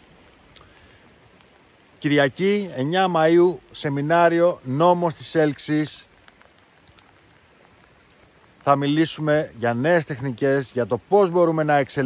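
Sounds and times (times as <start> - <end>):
faint steady rain: 0.0 - 12.0
drops ticking: 0.2 - 2.0.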